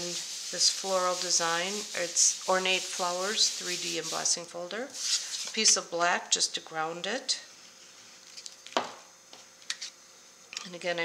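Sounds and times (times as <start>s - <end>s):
paper rubbing: 0.0s - 4.4s.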